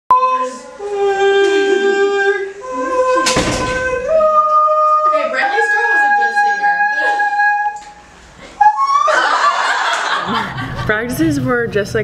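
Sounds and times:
girls laughing loudly: 8.4s - 11.0s.

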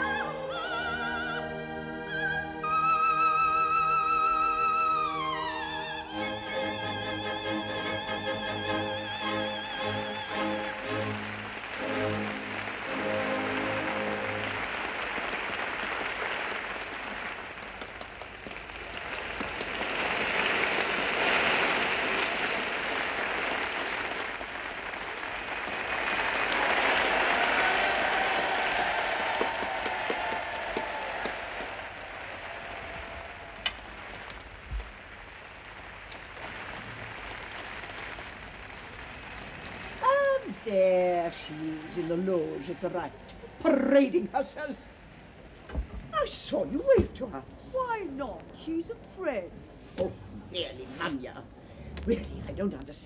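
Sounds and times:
orchestral music: 0.0s - 15.2s
audience applauding: 6.3s - 43.9s.

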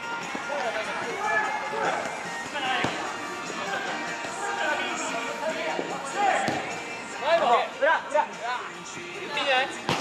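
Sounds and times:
faint background music: 0.0s - 10.0s
players shouting: 0.3s - 6.8s.

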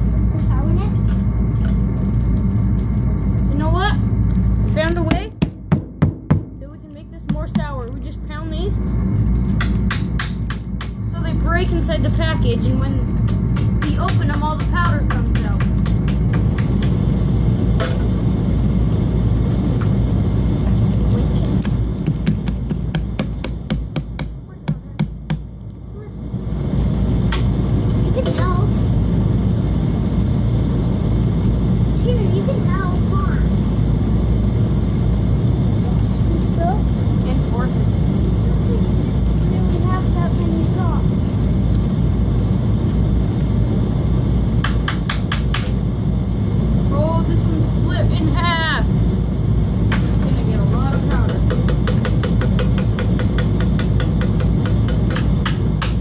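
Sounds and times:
loud low rumble: 0.0s - 56.0s.

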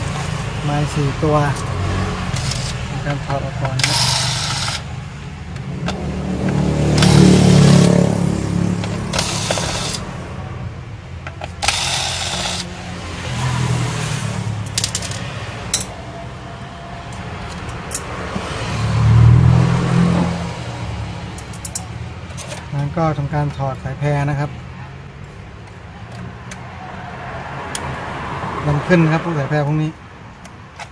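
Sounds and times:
metal screws clicking and scraping: 1.5s - 5.0s, 5.6s - 8.0s, 8.8s - 10.1s, 11.2s - 12.7s, 14.0s - 16.0s, 21.4s - 22.7s
electric screwdriver whirring: 3.8s - 4.9s, 6.9s - 8.0s, 8.8s - 10.1s, 11.4s - 12.8s.

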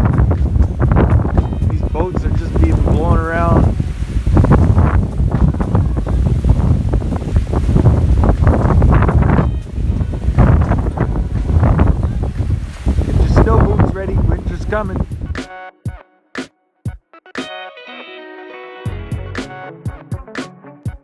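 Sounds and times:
gusting wind on microphone: 0.0s - 15.4s.

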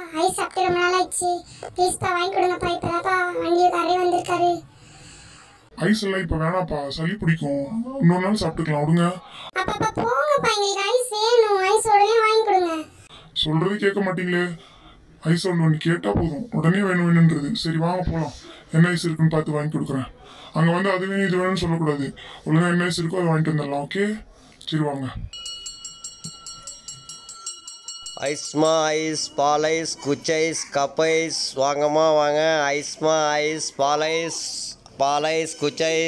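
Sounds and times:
hand bell jingling rapidly: 25.3s - 29.4s.

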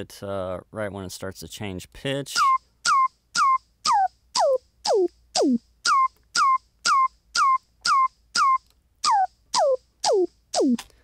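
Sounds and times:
hi-hat hiss: 2.3s - 11.0s
downward-swooping electronic tone: 2.4s - 10.8s.

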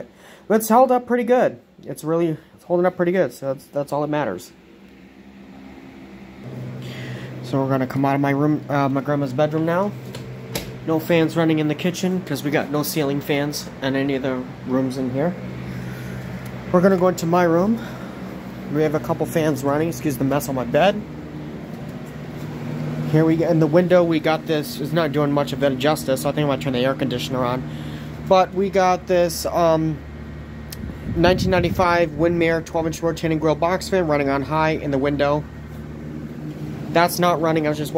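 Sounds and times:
faint fan motor hum: 0.0s - 37.9s
fan whooshing air: 0.0s - 37.9s.

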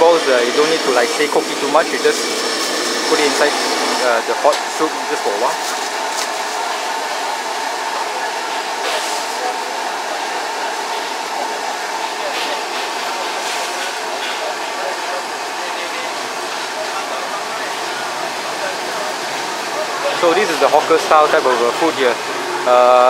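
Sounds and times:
whooshing hum of food stall: 0.0s - 23.0s.

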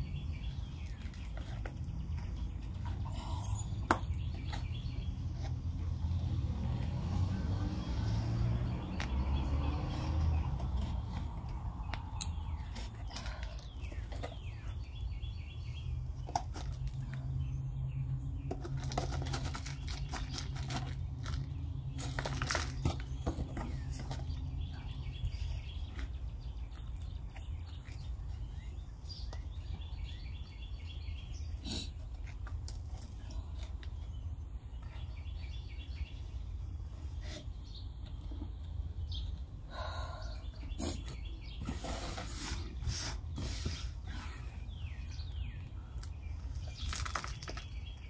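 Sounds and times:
small birds chirping: 0.0s - 48.0s
plastic jugs clicking and rustling: 18.4s - 24.7s.

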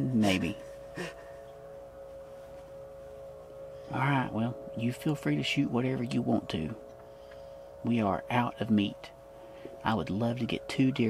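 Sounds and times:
distant machinery droning hum: 0.0s - 11.0s
person laughing: 1.0s - 1.4s.

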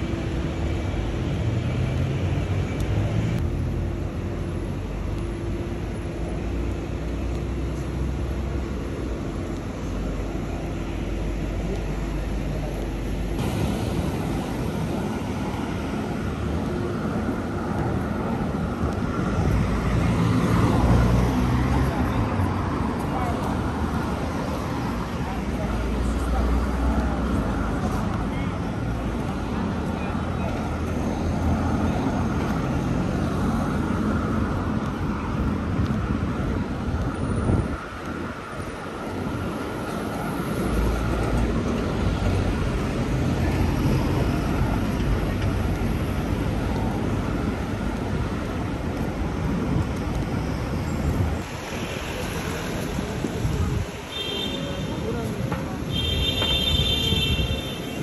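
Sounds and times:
traffic noise: 0.0s - 58.0s
passers-by talking: 7.5s - 58.0s.

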